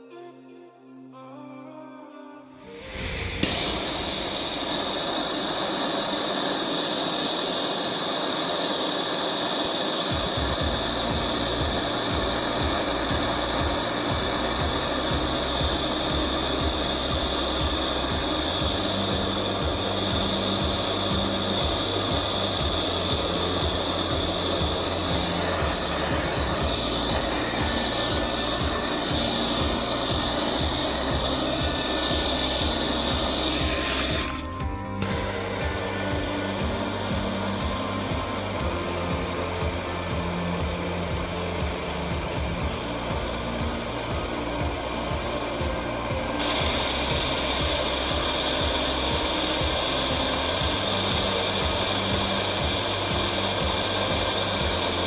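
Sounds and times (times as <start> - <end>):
blowtorch flame hissing: 2.7 - 55.0
background music with bass: 10.1 - 55.0.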